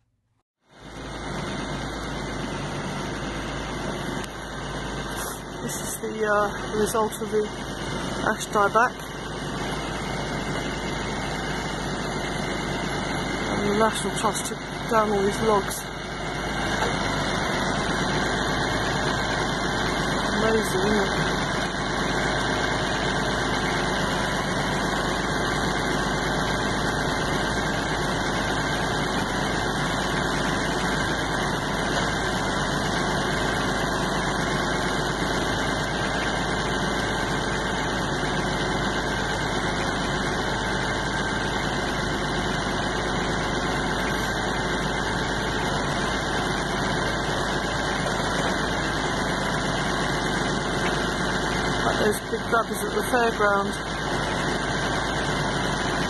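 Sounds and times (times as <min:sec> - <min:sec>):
tractor engine running: 0:00.6 - 0:56.0.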